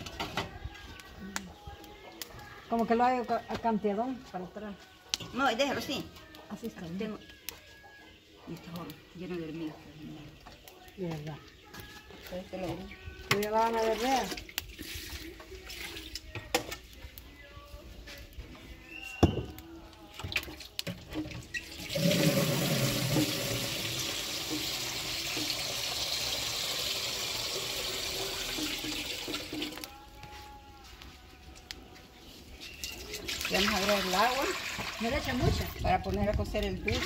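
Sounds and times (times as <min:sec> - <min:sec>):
water running: 0:21.7 - 0:29.9, 0:32.9 - 0:35.8.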